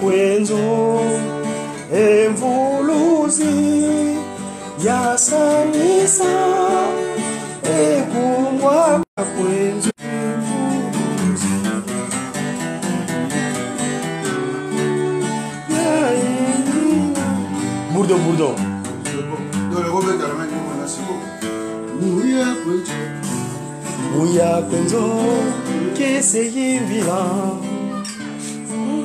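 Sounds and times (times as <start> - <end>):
person singing: 0.0 - 12.5, 13.2 - 18.4, 21.8 - 29.0
acoustic guitar playing: 0.0 - 29.0.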